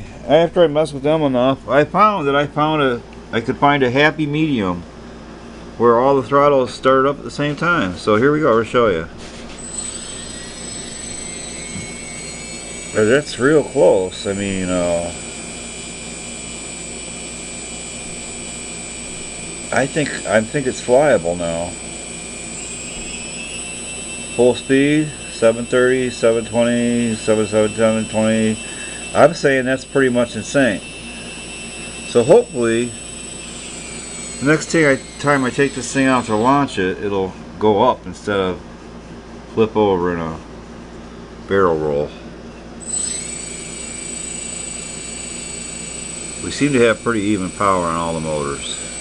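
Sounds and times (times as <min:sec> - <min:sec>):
drone motors whirring: 0:09.5 - 0:36.6, 0:42.8 - 0:49.0.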